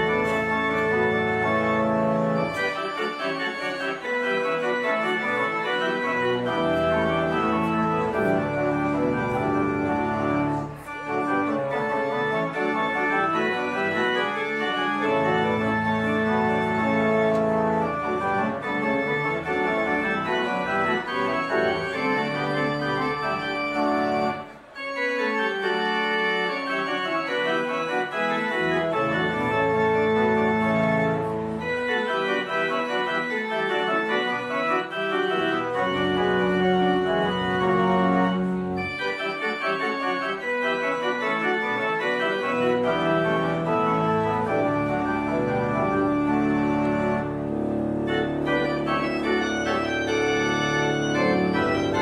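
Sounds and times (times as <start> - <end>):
organ playing sustained chords: 0.0 - 52.0.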